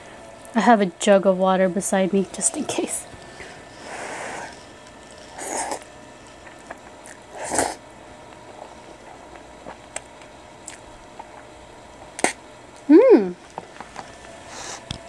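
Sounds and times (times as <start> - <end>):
chewing clicks: 9.9 - 10.8.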